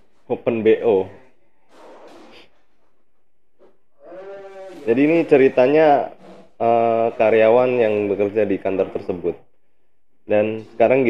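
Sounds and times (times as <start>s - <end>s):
man speaking: 0.3s - 1.2s, 4.8s - 9.4s, 10.2s - 11.0s.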